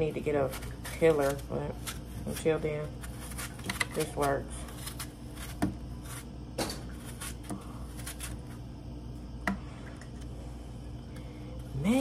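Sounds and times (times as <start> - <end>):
knife peeling apple skin: 0.0 - 8.6
steady low hum: 0.0 - 12.0.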